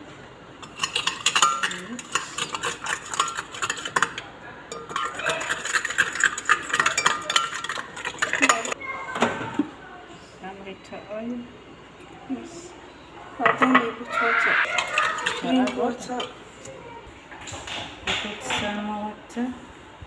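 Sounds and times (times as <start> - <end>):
whisk clicking against glass bowl: 0.6 - 8.8, 14.6 - 16.3.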